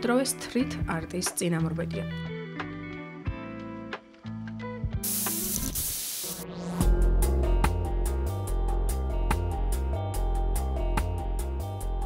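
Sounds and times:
background music with held notes: 0:00.0 - 0:05.6, 0:06.4 - 0:12.0
spray-paint can hissing: 0:05.0 - 0:06.4.

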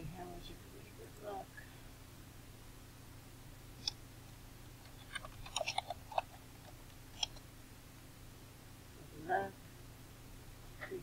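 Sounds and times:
faint steady hum: 0:00.0 - 0:11.0
computer keyboard typing: 0:05.0 - 0:06.4.

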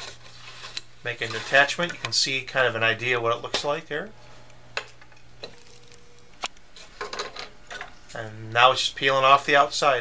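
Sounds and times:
scroll saw humming: 0:02.7 - 0:08.5.

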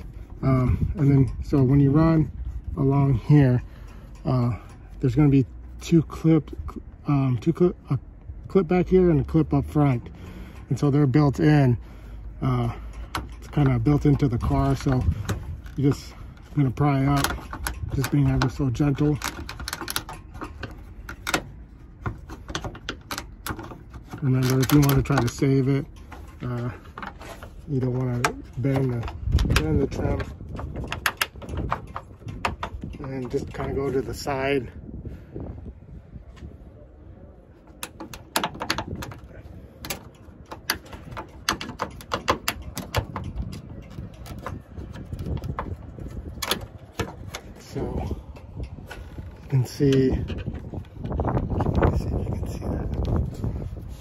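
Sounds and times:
trim clicking and snapping: 0:12.2 - 0:34.3, 0:37.7 - 0:53.6
pry tool clicking and tapping: 0:16.9 - 0:27.2, 0:37.8 - 0:45.8.

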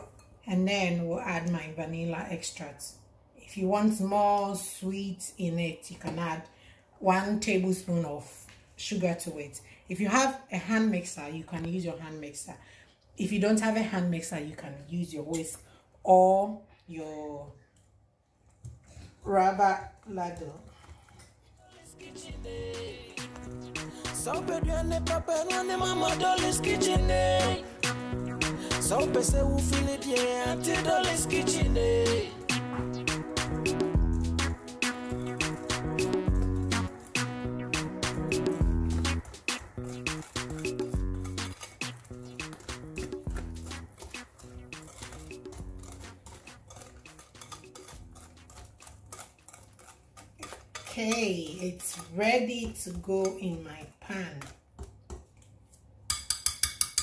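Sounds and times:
background music with bass and drums: 0:22.1 - 0:46.2
whisk clicking against glass bowl: 0:38.9 - 0:53.4, 0:56.1 - 0:57.0.

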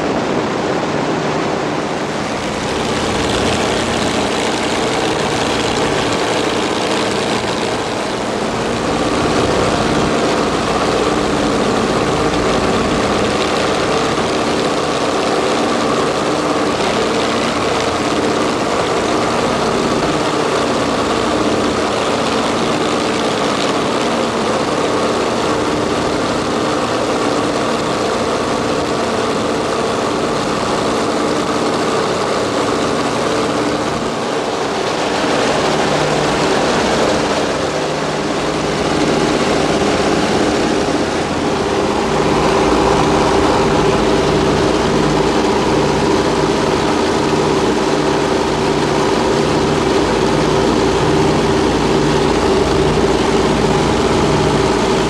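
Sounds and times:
aircraft engines and propellers droning: 0:00.0 - 0:55.0
rush of air: 0:00.0 - 0:55.0.

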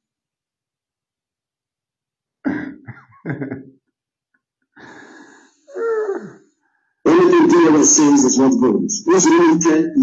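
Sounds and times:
man laughing: 0:02.4 - 0:04.0.

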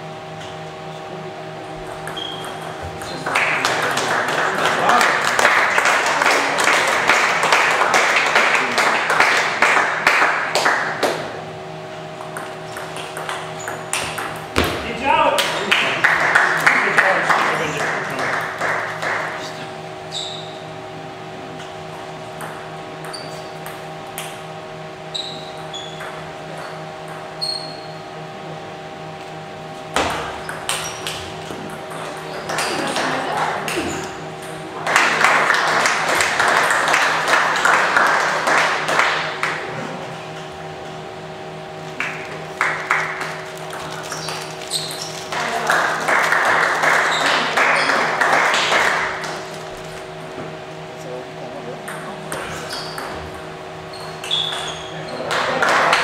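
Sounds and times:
electrical hum: 0:00.0 - 0:56.0
spectators applauding: 0:03.0 - 0:11.3, 0:15.2 - 0:19.8, 0:32.3 - 0:40.0, 0:42.0 - 0:49.7, 0:55.0 - 0:56.0.

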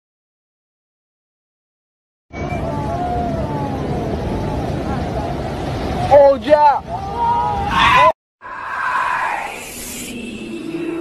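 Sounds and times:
surf rumbling: 0:02.3 - 0:11.0
wind on microphone: 0:02.4 - 0:06.1
people shouting: 0:06.8 - 0:09.4.

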